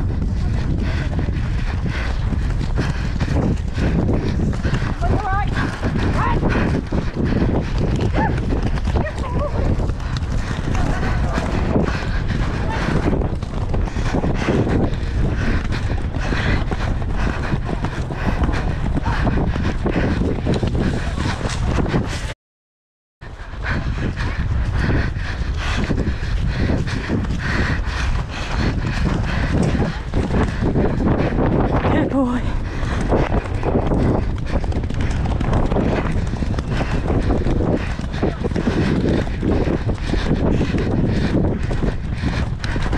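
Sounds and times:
horses galloping on turf: 0:00.0 - 0:22.3, 0:23.3 - 0:42.9
wind buffeting microphone: 0:00.0 - 0:22.4, 0:23.2 - 0:42.9.

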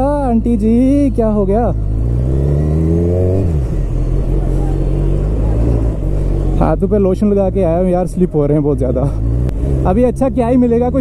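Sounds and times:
motorcycle engine revving: 0:00.0 - 0:11.0.

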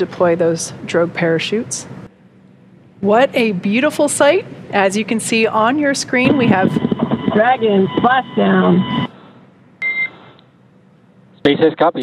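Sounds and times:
short electronic beep: 0:09.8 - 0:10.2.

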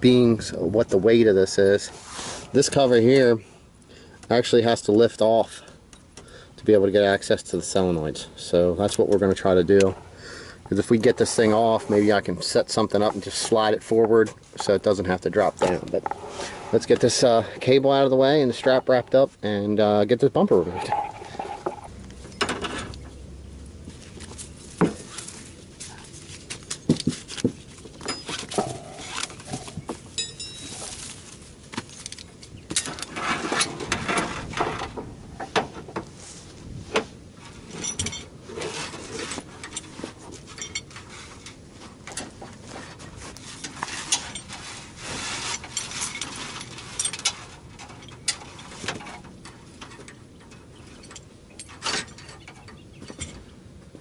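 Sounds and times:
metal cable and hardware clinking: 0:20.4 - 0:23.1, 0:23.9 - 0:35.6, 0:37.5 - 0:53.4.

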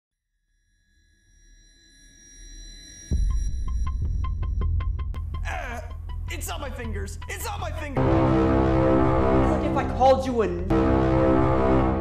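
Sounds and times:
deep bass beat: 0:03.2 - 0:12.0.

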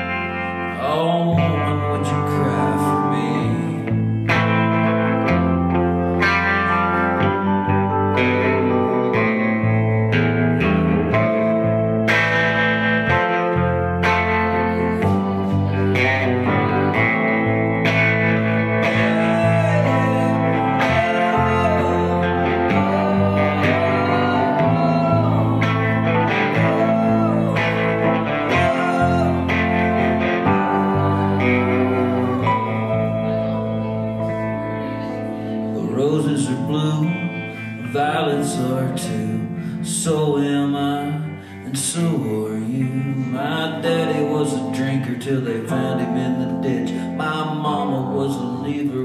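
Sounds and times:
bass line: 0:00.0 - 0:49.0
country band playing: 0:00.0 - 0:49.0
electric guitar lead: 0:00.0 - 0:49.0.

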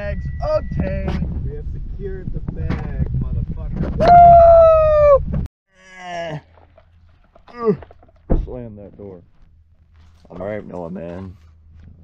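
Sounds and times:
voices: 0:00.0 - 0:05.1
car cabin rumble: 0:00.1 - 0:05.5
person yelling: 0:04.0 - 0:05.2.

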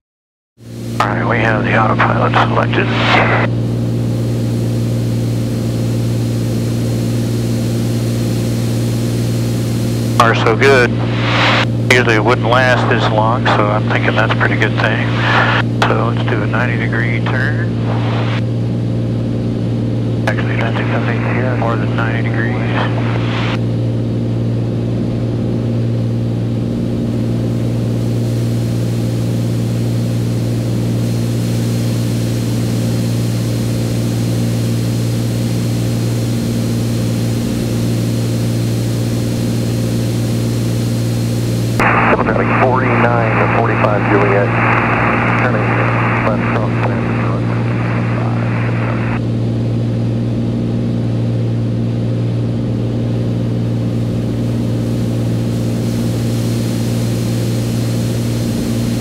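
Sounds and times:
piston engine and propeller drone: 0:00.6 - 0:59.0
radio voice: 0:01.0 - 0:03.5, 0:10.2 - 0:18.4, 0:20.2 - 0:23.6, 0:41.8 - 0:49.2.

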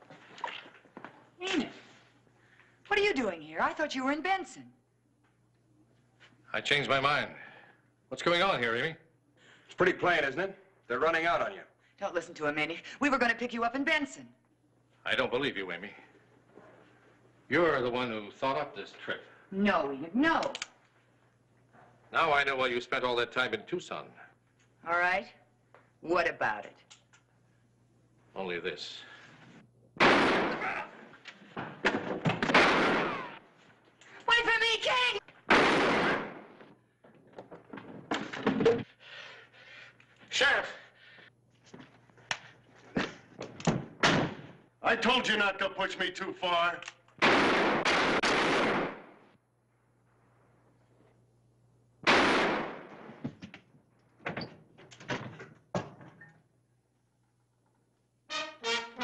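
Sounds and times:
gunshot with ringing tail: 0:30.0 - 0:30.9, 0:32.5 - 0:33.4, 0:35.5 - 0:36.6, 0:52.1 - 0:53.2.

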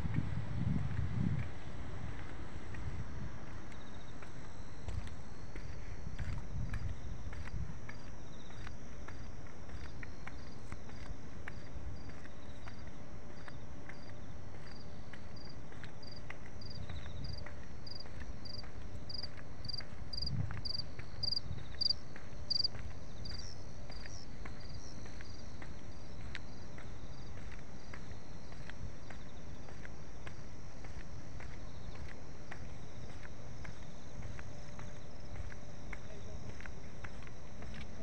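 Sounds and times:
wind rumble on microphone: 0:00.0 - 0:38.0
footsteps clicking: 0:00.9 - 0:38.0
field cricket chirping: 0:02.2 - 0:38.0
higher-pitched cricket chirping: 0:03.8 - 0:29.5.

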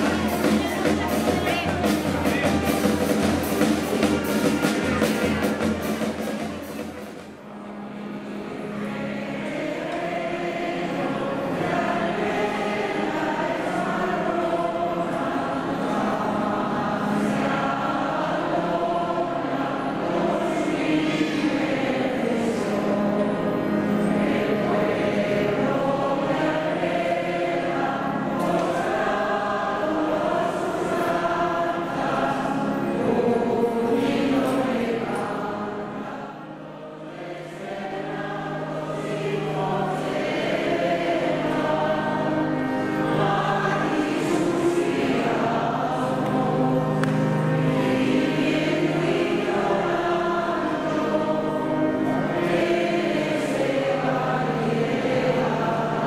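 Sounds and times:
group singing a hymn: 0:00.0 - 0:56.0.

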